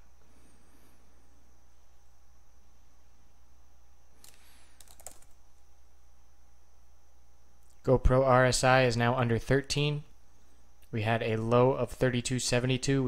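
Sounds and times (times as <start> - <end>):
low electrical hum: 0.0 - 13.0
computer mouse clicks: 4.2 - 5.4.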